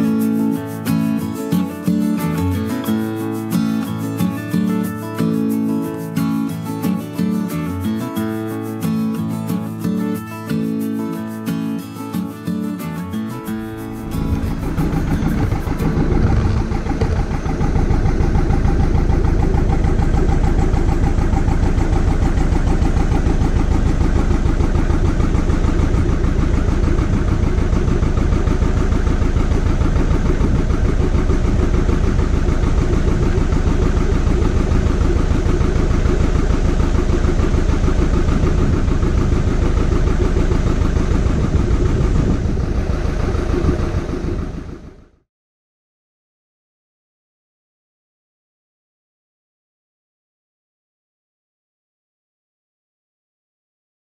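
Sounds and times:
boat diesel engine running: 0.0 - 45.2.

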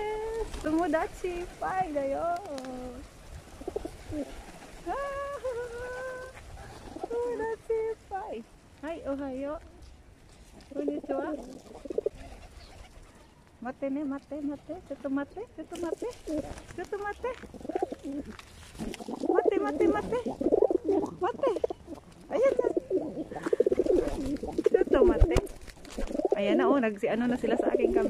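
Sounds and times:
pigeons cooing: 0.0 - 8.2, 10.6 - 13.4, 15.8 - 28.0.

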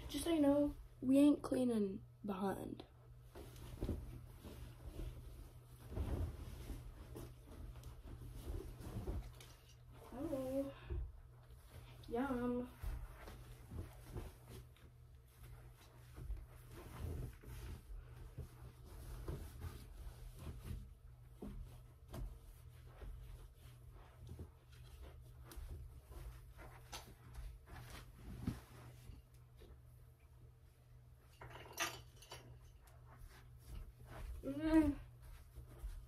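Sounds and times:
bedding rustling: 2.5 - 36.0
person moving about: 3.1 - 36.0.

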